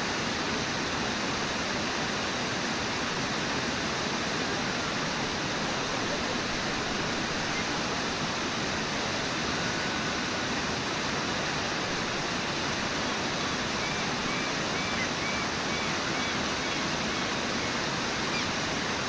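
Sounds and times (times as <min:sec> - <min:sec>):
river water rushing: 0:00.0 - 0:19.0.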